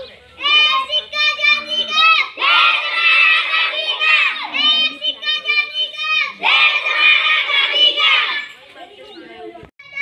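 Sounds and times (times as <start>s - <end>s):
children shouting together: 0.4s - 8.5s.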